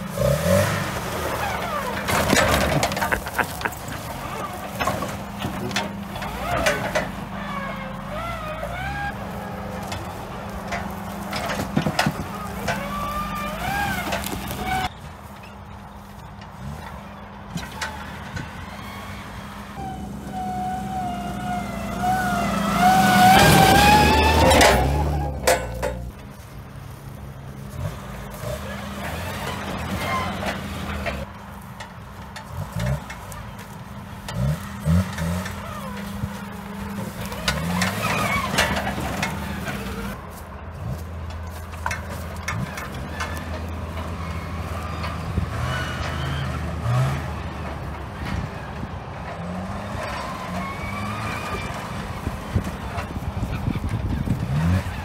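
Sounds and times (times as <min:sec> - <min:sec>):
truck engine revving: 0:00.0 - 0:55.0
knocks and clunks from truck: 0:01.3 - 0:15.6, 0:22.3 - 0:26.3.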